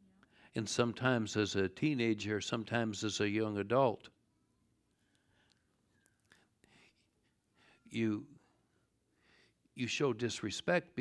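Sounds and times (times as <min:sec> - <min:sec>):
man speaking: 0:00.6 - 0:04.1, 0:07.9 - 0:08.4, 0:09.8 - 0:11.0
man breathing faintly: 0:04.9 - 0:09.7.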